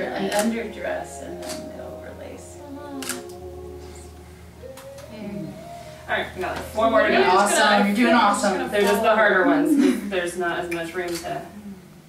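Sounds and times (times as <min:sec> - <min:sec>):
camera shutter click: 0:03.0 - 0:03.3.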